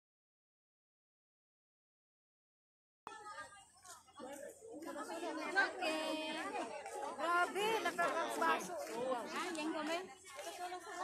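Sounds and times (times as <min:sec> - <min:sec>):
lively chatter of voices: 0:03.1 - 0:11.0.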